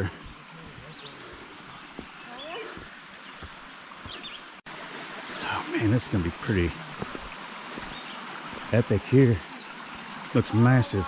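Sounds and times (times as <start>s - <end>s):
soft footsteps: 0.0s - 4.5s, 6.8s - 8.8s
flowing creek: 0.0s - 11.0s.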